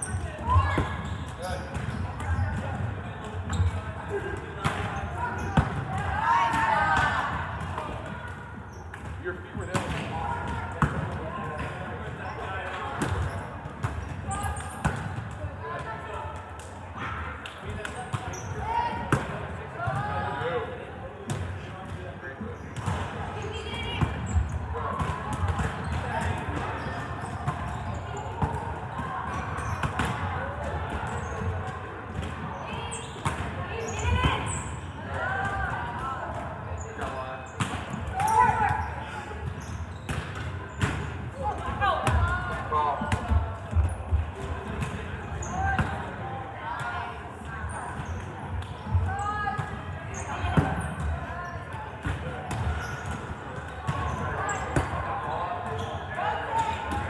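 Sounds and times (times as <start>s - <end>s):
volleyballs slapping and bouncing: 0.0s - 16.8s, 21.2s - 46.2s, 47.0s - 57.0s
chatter and calls of players: 0.0s - 57.0s.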